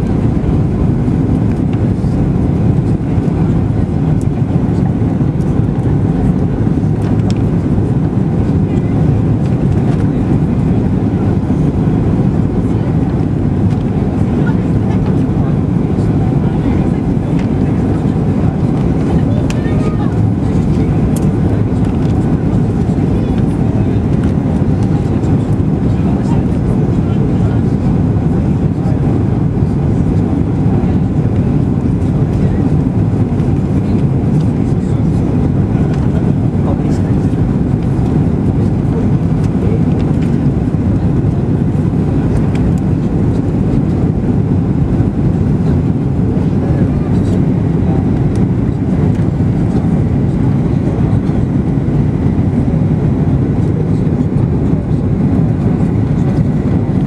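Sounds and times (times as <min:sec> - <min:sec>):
airplane cabin rumble: 0:00.0 - 0:57.0.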